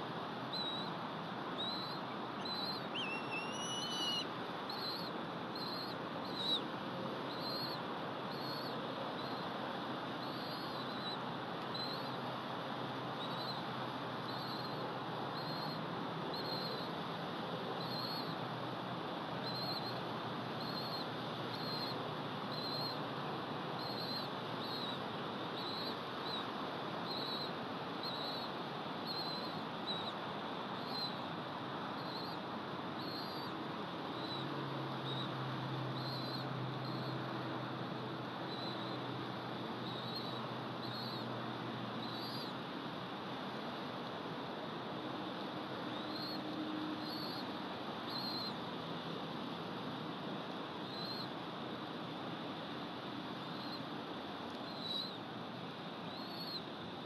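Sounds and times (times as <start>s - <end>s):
background hiss: 0.0s - 57.0s
rising whistle: 2.4s - 4.2s
eagle chick peeping: 2.4s - 5.0s.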